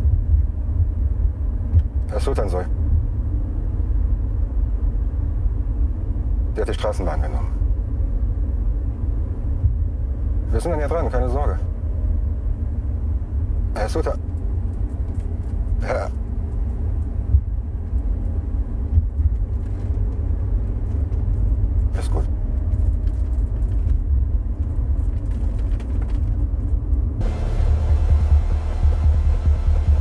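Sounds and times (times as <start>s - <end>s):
car cabin rumble: 0.0s - 30.0s
harsh hissing noise: 27.2s - 30.0s.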